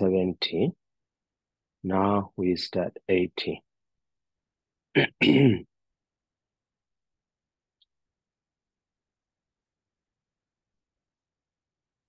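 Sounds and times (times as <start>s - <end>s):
man clearing his throat: 4.9s - 5.7s.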